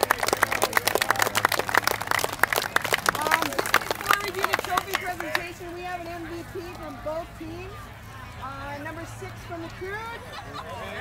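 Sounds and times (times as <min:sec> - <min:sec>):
people clapping: 0:00.0 - 0:06.9.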